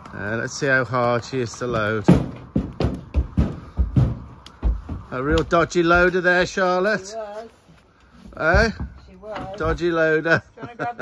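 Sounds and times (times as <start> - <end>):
hooves thudding on a ramp: 0.0 - 6.9, 8.2 - 10.1.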